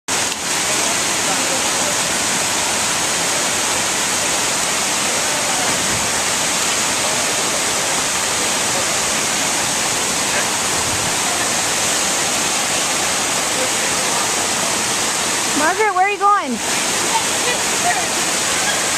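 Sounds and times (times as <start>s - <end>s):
waterfall rushing: 0.1s - 18.9s.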